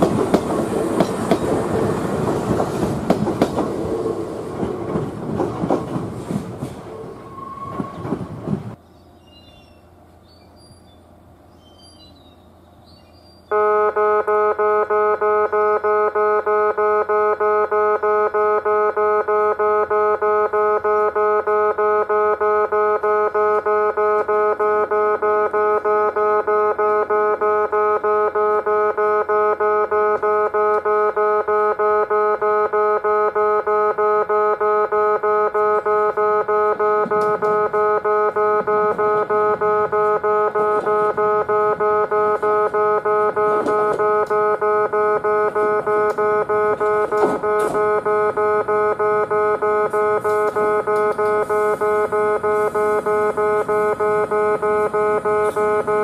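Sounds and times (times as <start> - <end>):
train running noise: 0.0 - 13.5, 36.4 - 44.4
level crossing warning bell: 35.2 - 56.0.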